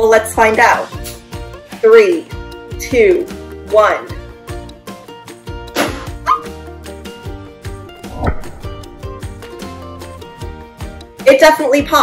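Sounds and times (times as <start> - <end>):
background music with a beat: 4.2 - 11.2
sharp sound: 8.0 - 10.0.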